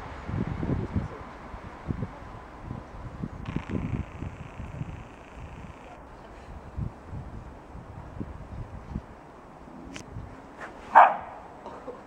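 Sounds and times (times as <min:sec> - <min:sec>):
dog barking: 0:10.9 - 0:11.4.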